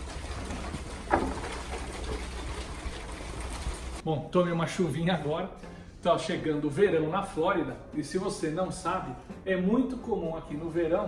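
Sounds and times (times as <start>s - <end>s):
rain falling steadily: 0.0s - 4.0s.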